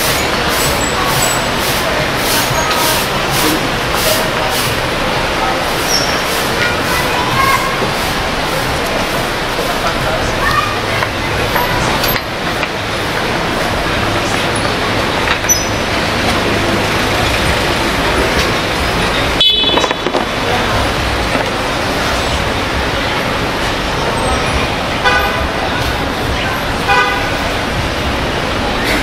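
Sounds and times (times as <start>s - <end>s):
city street traffic: 0.0s - 29.0s
short vehicle horn toots: 19.4s - 20.0s.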